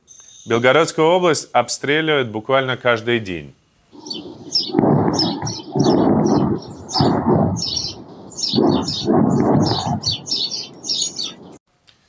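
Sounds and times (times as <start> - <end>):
small birds chirping: 3.9 - 11.6
rough rumbling bursts of noise: 4.0 - 11.6.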